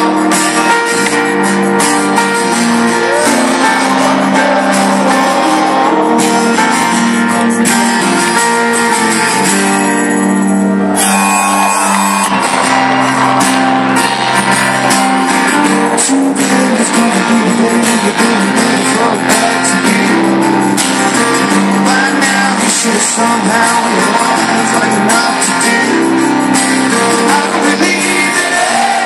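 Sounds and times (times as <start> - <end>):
acoustic guitar strumming: 0.0 - 29.0
live rock band playing: 0.0 - 29.0.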